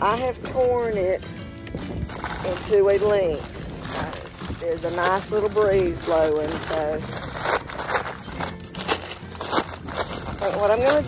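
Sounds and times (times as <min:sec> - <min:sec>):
packing paper crinkling: 0:01.6 - 0:11.0
sharp paper crackles: 0:01.6 - 0:11.0.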